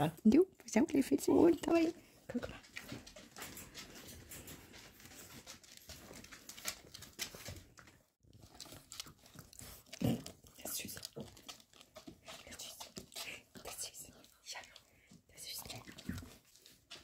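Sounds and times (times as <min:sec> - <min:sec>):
puppy scrambling and rustling: 0:02.3 - 0:09.8.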